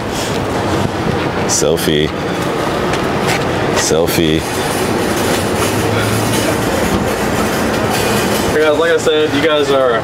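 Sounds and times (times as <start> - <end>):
loud rumbling noise with hiss: 0.0 - 10.0.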